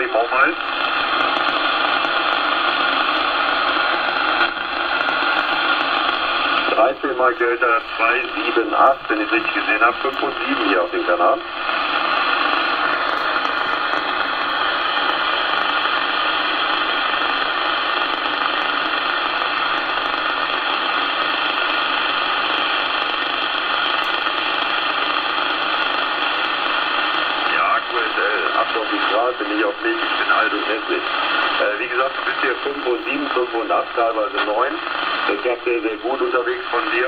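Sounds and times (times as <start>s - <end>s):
weak voice over radio: 0.0s - 1.1s, 6.5s - 11.6s, 27.4s - 37.0s
radio static: 0.0s - 37.0s.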